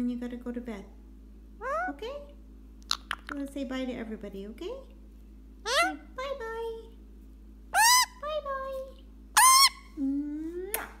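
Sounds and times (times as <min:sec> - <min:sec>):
parakeet squawk: 0:07.7 - 0:08.2, 0:09.4 - 0:09.9.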